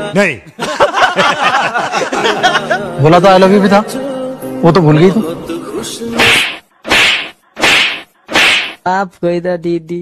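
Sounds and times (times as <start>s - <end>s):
hand slap: 6.2s - 8.8s.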